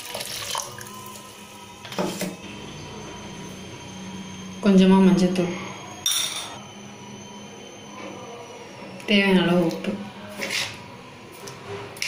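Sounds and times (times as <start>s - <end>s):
liquid pouring into a pot: 0.0s - 1.4s.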